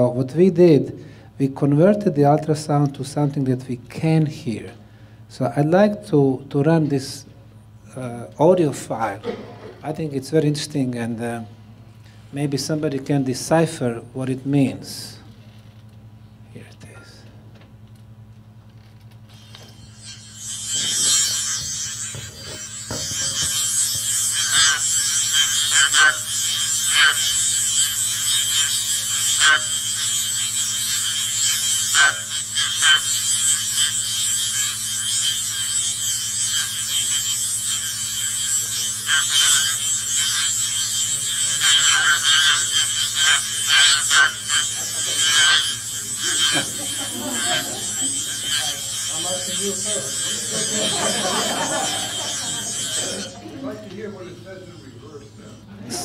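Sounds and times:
constant high whine: 0:00.0 - 0:56.0
steady high hiss: 0:19.4 - 0:55.7.

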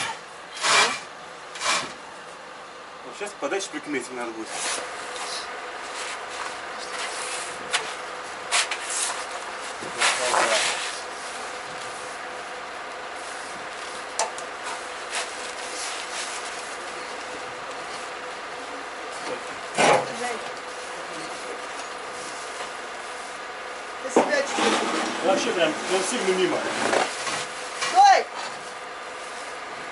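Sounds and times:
steady background hum: 0:00.0 - 0:29.9.

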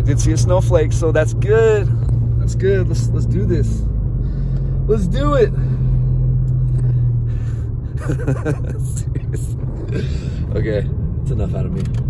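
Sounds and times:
man talking: 0:00.0 - 0:03.8, 0:04.9 - 0:05.6, 0:10.4 - 0:12.0
car engine and road rumble: 0:00.0 - 0:12.0
man laughing: 0:07.9 - 0:10.4.

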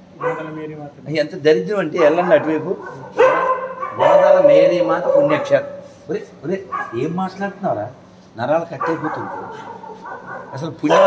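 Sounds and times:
man talking in a raised voice: 0:00.2 - 0:03.2, 0:04.0 - 0:09.6, 0:10.5 - 0:11.0.

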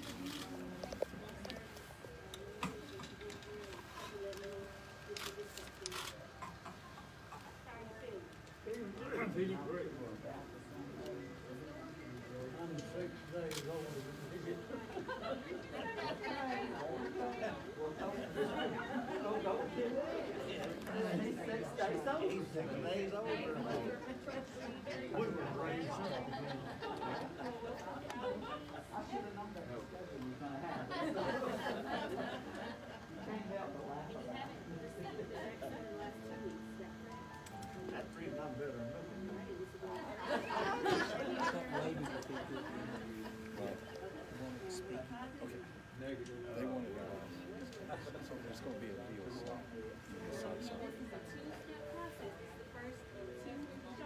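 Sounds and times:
background chatter: 0:00.0 - 0:54.0
music: 0:34.3 - 0:44.3, 0:48.6 - 0:54.0.

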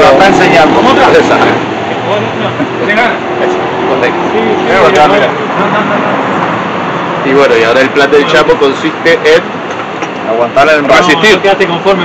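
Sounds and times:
room and street hum: 0:00.0 - 0:12.0.

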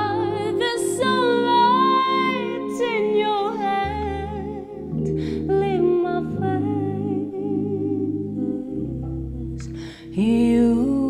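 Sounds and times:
woman singing with vibrato: 0:00.0 - 0:09.2, 0:09.9 - 0:11.0
sustained piano chords: 0:00.0 - 0:11.0.

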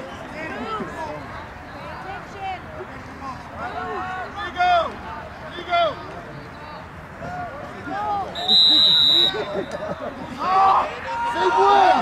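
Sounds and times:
voices calling out: 0:00.0 - 0:12.0.

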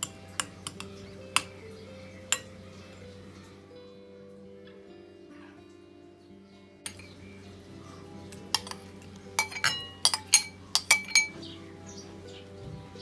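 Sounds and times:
metal spoon clinking on dishes: 0:00.0 - 0:01.7, 0:02.3 - 0:02.6, 0:06.9 - 0:07.3, 0:08.3 - 0:11.4
soft background music: 0:00.0 - 0:13.0.

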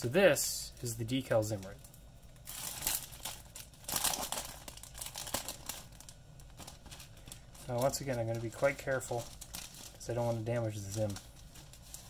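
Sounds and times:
plastic bag crinkling: 0:00.7 - 0:12.0.

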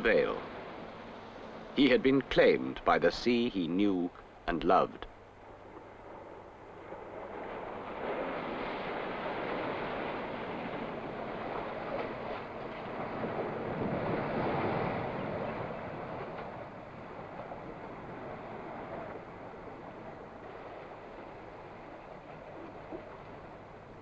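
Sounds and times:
sea waves washing: 0:00.0 - 0:24.0.

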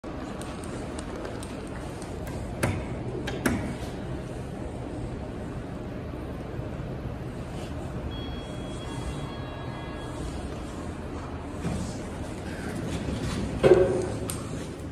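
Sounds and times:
steady background hum: 0:00.0 - 0:14.9.

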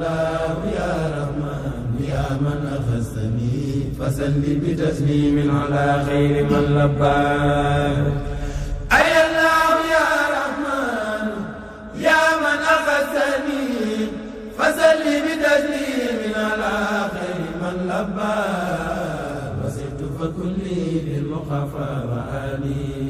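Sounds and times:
voices chanting devotional verses: 0:00.0 - 0:23.0.

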